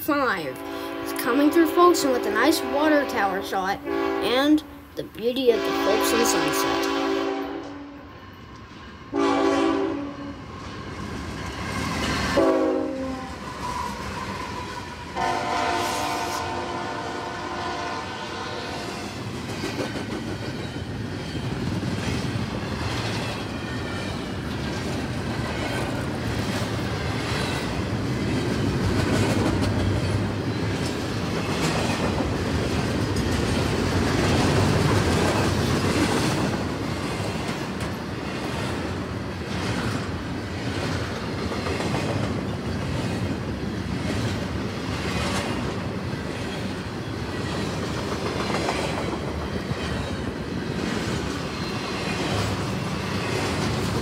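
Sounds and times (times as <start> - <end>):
train air horn blasts: 0.6 - 1.3, 3.9 - 4.3, 5.6 - 8.0, 9.1 - 10.4, 12.3 - 13.5, 15.2 - 19.2
wheels clacking over rail joints: 19.3 - 54.0.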